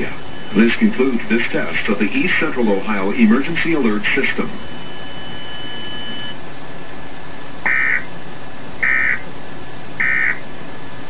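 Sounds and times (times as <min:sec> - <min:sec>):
buzzy digital data bursts: 0:00.0 - 0:05.4, 0:07.7 - 0:08.1, 0:08.8 - 0:09.2, 0:10.0 - 0:10.4
broadcast hiss: 0:00.0 - 0:11.0.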